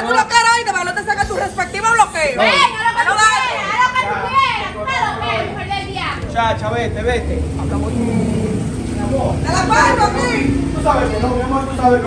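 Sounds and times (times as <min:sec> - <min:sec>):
voices arguing: 0:00.0 - 0:12.0.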